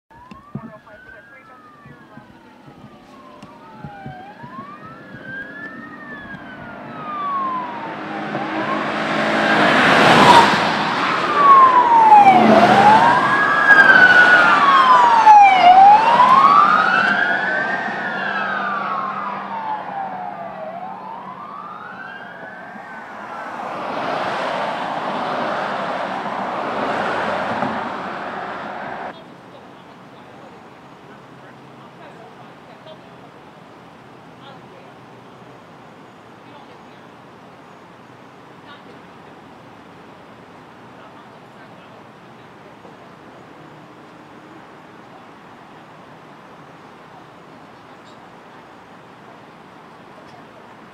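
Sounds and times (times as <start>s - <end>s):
police sirens wailing: 0.1s - 50.9s
passing vehicles rushing: 0.2s - 50.9s.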